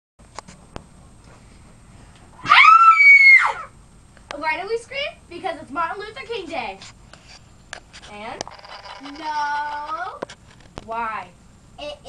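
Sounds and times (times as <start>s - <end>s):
girl screaming high-pitched: 2.4s - 3.7s.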